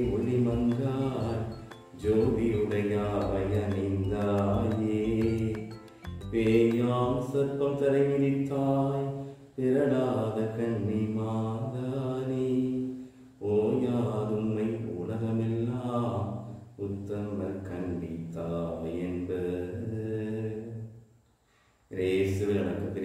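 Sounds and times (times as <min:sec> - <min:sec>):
man singing a slow chant: 0:00.0 - 0:21.0, 0:21.9 - 0:23.0.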